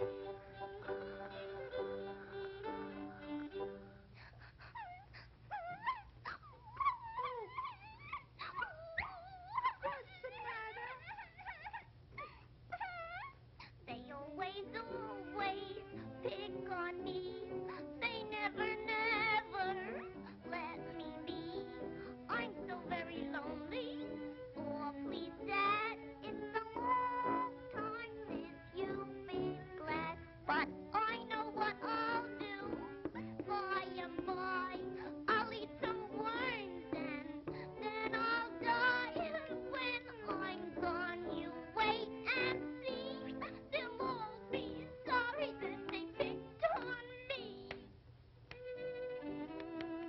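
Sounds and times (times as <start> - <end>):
high-pitched cartoon crying: 4.8 - 13.5
woman singing nasally: 13.8 - 47.9.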